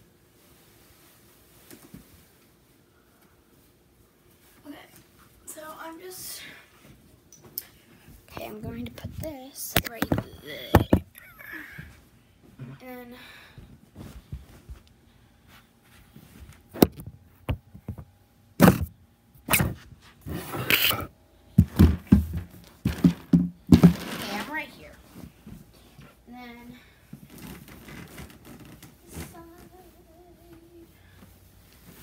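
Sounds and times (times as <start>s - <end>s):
knocks and thumps of items: 9.8s - 11.1s, 16.7s - 19.8s, 21.6s - 24.6s
rustling: 19.5s - 25.9s, 27.1s - 32.0s
plastic bin being moved: 21.6s - 24.7s.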